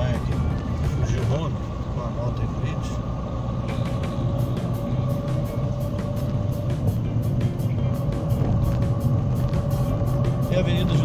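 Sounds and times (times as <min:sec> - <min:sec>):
background music with ticking beat: 0:00.0 - 0:02.0, 0:02.6 - 0:11.0
car engine and road rumble: 0:00.0 - 0:11.0.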